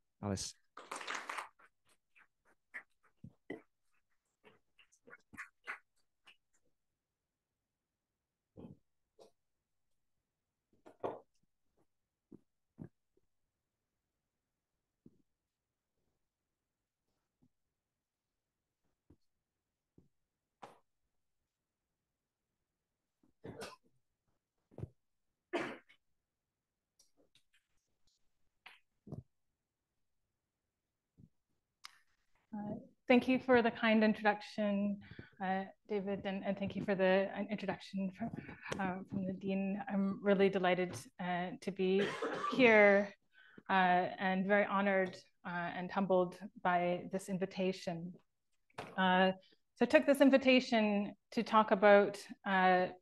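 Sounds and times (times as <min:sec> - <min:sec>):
applause: 0:00.8 - 0:01.5
person clearing throat: 0:23.4 - 0:23.8, 0:25.5 - 0:26.0, 0:42.0 - 0:42.6.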